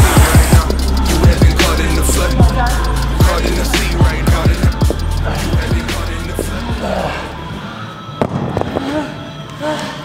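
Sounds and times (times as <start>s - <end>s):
backing music with heavy bass: 0.0s - 7.6s.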